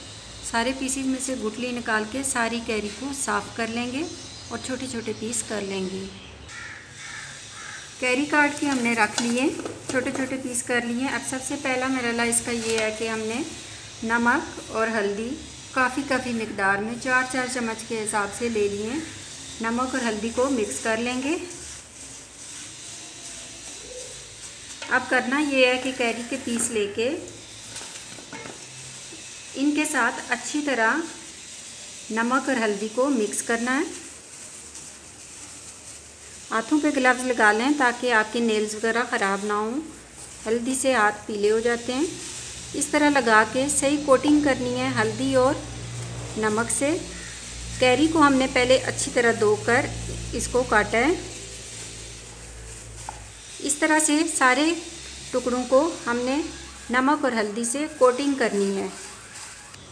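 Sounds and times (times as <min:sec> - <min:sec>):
bird calling faintly: 0:04.2 - 0:08.7
gloved hands rubbing in salt: 0:06.5 - 0:59.9.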